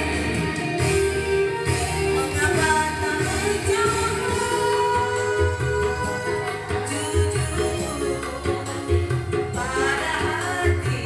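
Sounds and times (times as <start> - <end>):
amplified backing music: 0.0 - 11.0
pulsing bass line: 0.0 - 11.0
woman singing into a microphone: 1.6 - 11.0.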